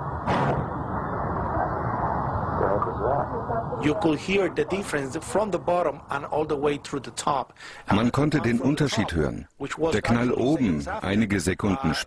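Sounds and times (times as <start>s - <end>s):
muffled recording noise: 0.0s - 12.0s.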